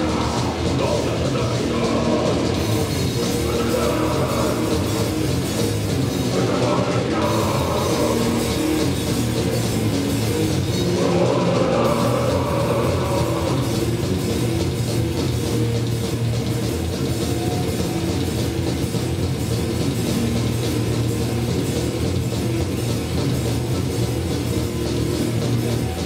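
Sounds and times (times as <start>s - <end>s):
bass guitar: 0.0s - 26.0s
distorted electric guitars: 0.0s - 26.0s
drum kit: 0.0s - 26.0s.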